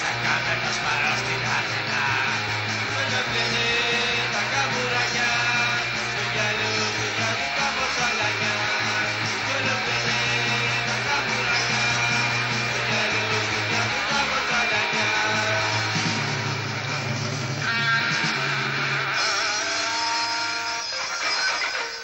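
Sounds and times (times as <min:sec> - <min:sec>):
steady bass notes: 0:00.0 - 0:19.3
distorted electric guitars: 0:00.0 - 0:22.0.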